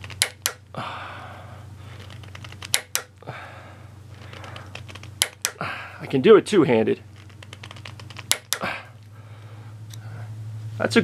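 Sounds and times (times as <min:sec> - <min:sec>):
torque wrench light ticking: 0:02.6 - 0:03.2, 0:05.2 - 0:05.6.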